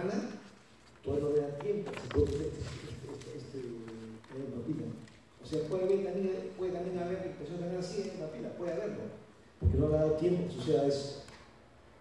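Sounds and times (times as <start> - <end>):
people talking: 1.0 - 11.2.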